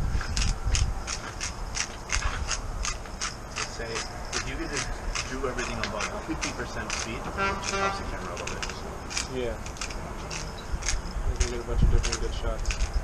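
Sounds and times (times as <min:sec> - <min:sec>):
buzzing rattle: 0:00.0 - 0:13.0
wind rumbling on microphone: 0:00.0 - 0:13.0
handling clicks and taps: 0:00.4 - 0:12.9.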